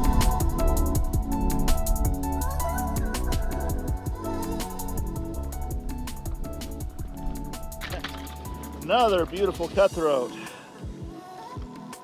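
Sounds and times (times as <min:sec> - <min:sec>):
electronic music with fast drum beat: 0:00.0 - 0:12.0.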